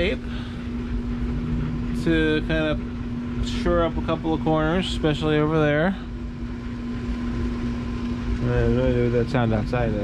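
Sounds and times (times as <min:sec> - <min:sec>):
machine humming and rumbling: 0:00.0 - 0:10.0.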